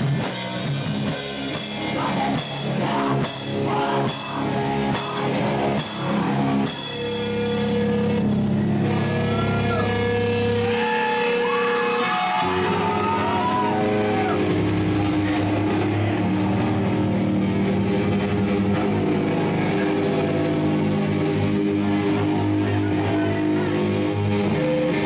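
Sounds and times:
bass guitar droning: 0.0s - 25.0s
distorted electric guitar: 0.0s - 25.0s.

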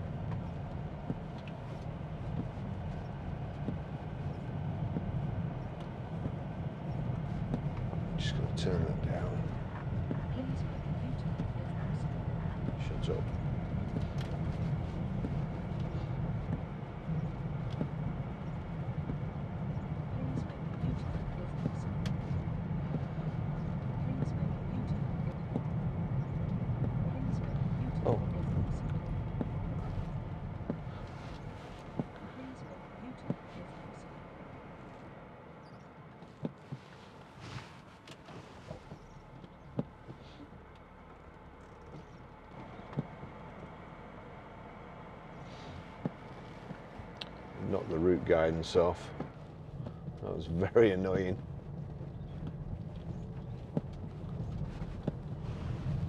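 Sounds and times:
in-cabin road and engine rumble: 0.0s - 56.0s.

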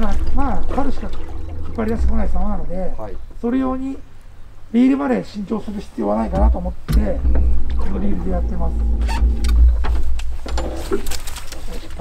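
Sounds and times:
steady low rumble: 0.0s - 10.9s.

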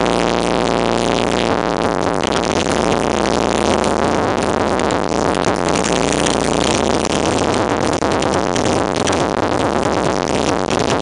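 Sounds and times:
loud electronic music through subwoofers: 0.0s - 11.0s.

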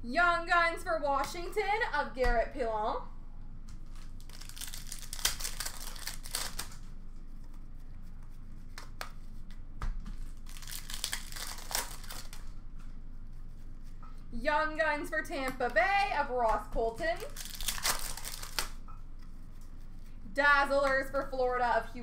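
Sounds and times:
cards being handled: 3.7s - 14.1s, 17.2s - 20.2s
card pack wrappers crinkling: 3.8s - 6.9s, 10.2s - 12.6s, 17.2s - 18.8s.

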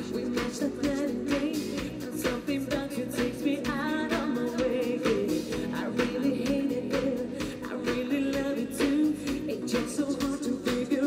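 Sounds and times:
drums with steady beat: 0.0s - 11.0s
keyboard: 0.0s - 11.0s
woman singing: 0.0s - 11.0s.

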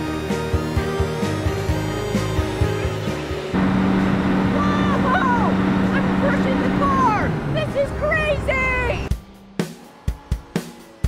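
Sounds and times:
excavator diesel engine hum: 0.0s - 11.0s.

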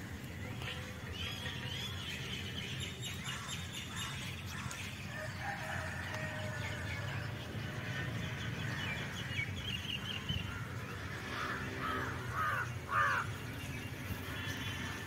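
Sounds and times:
crows cawing: 10.4s - 13.4s.

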